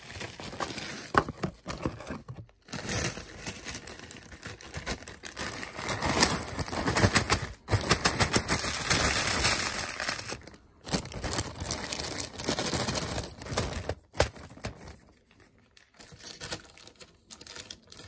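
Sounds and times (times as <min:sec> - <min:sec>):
plastic bag crinkling: 0:00.0 - 0:18.0.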